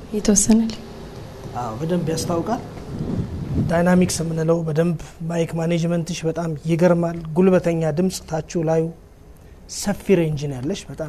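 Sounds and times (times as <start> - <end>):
low muffled noise: 0.0 - 11.0.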